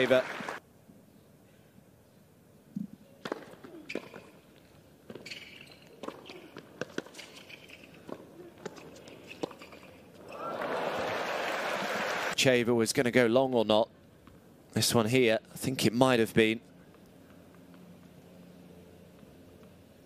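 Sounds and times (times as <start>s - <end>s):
crowd applause and cheering: 0.0s - 0.6s, 10.2s - 12.4s
tennis balls struck by racquets: 2.8s - 4.4s.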